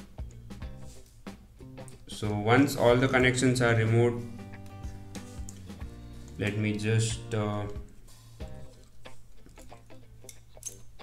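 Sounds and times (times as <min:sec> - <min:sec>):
small metal parts clicking: 0:08.8 - 0:11.0.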